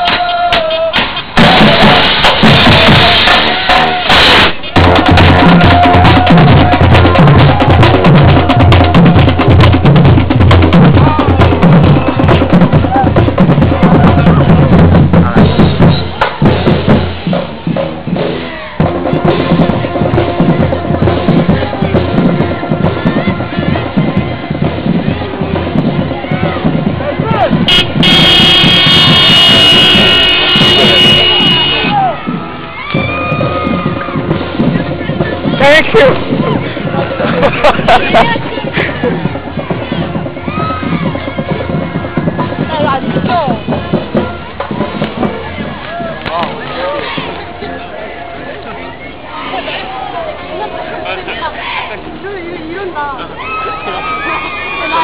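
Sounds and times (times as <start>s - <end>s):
bass drums beating: 0.0s - 55.0s
crowd voices: 0.0s - 55.0s
horn blast: 0.1s - 37.5s.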